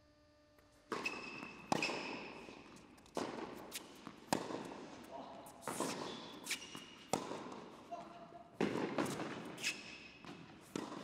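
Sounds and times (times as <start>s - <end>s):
tennis ball pops off racquet: 0.9s - 2.2s
shoe squeaks on court: 0.9s - 4.2s, 5.6s - 7.2s, 9.0s - 10.3s.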